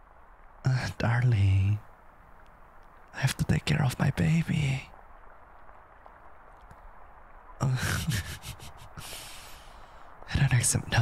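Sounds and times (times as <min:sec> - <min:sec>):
faint background hiss: 0:00.0 - 0:11.0
faint small ticks: 0:02.3 - 0:03.3, 0:05.0 - 0:07.4.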